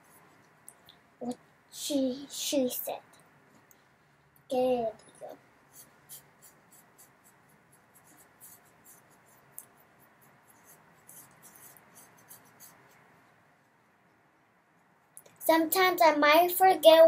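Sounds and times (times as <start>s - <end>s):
paintbrush strokes: 0.0s - 0.7s, 4.8s - 13.8s.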